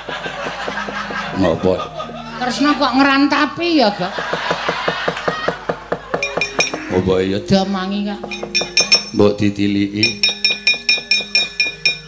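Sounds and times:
metal plates clanking: 0:00.0 - 0:12.0
soft gamelan notes: 0:00.2 - 0:04.1, 0:06.2 - 0:12.0.

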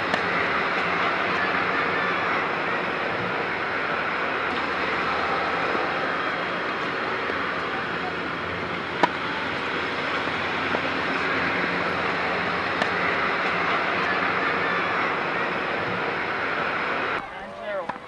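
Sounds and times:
rushing outdoor background noise: 0:00.0 - 0:18.0
tennis ball struck by racket: 0:00.1 - 0:01.7, 0:08.8 - 0:14.4.

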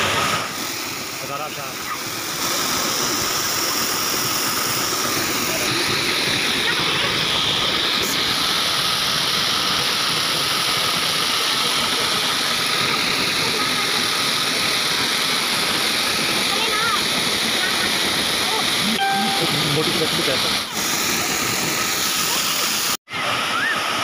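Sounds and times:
waterfall rushing onto rock: 0:00.0 - 0:24.0.

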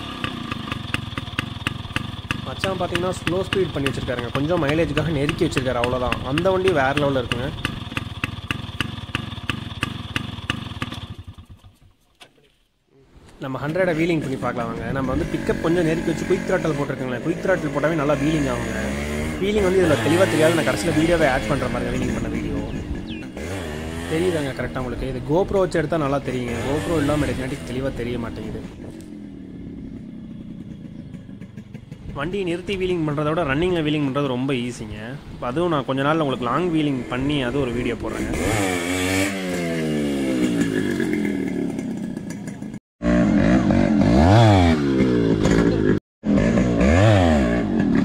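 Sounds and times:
motorcycle engine idling with pops: 0:00.1 - 0:12.7, 0:40.4 - 0:42.8, 0:44.9 - 0:46.5.

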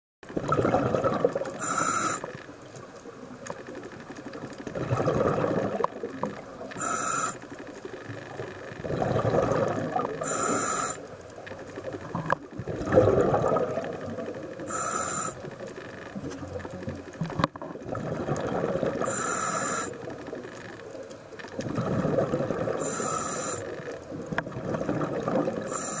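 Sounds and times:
exhaled bubbles gurgling: 0:00.2 - 0:26.0
regulator hiss: 0:01.6 - 0:02.5, 0:06.7 - 0:07.7, 0:10.2 - 0:11.2, 0:14.6 - 0:15.6, 0:19.0 - 0:20.2, 0:22.8 - 0:23.9, 0:25.7 - 0:26.0.

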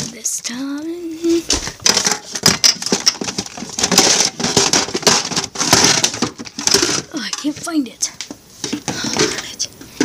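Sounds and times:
rustling and crackling handling noise: 0:00.0 - 0:10.0.

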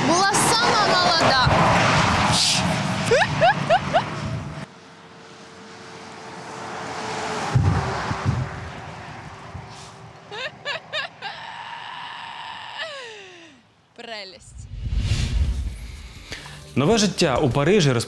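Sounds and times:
lorry passing: 0:00.0 - 0:13.7
wind on microphone: 0:07.5 - 0:09.8
held falling cry: 0:10.3 - 0:13.6
short rising squeals: 0:14.5 - 0:16.7.

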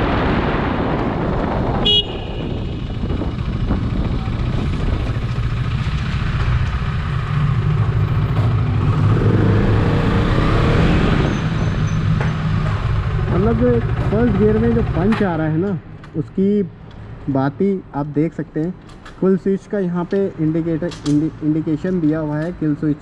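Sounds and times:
wind rushing over microphone: 0:00.0 - 0:13.8
horn toot: 0:01.8 - 0:02.8
motorcycle engine running: 0:01.9 - 0:10.0.

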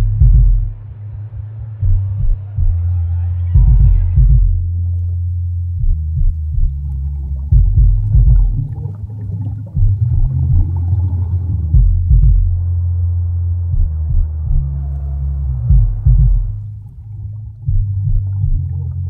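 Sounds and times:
deep rumbling ambient drone: 0:00.0 - 0:19.0.

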